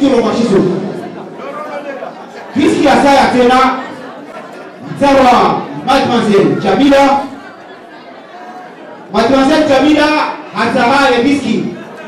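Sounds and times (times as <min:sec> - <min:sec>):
man speaking over loudspeakers: 0:00.0 - 0:04.0, 0:04.8 - 0:07.4, 0:09.1 - 0:11.9
quiet background chatter: 0:00.0 - 0:10.6.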